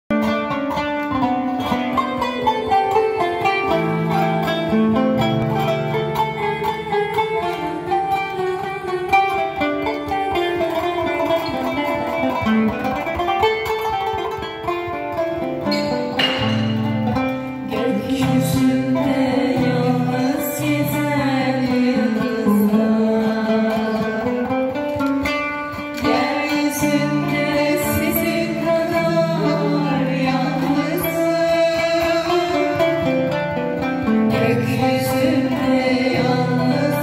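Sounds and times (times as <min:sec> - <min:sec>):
plucked zither melody: 0:00.1 - 0:37.0.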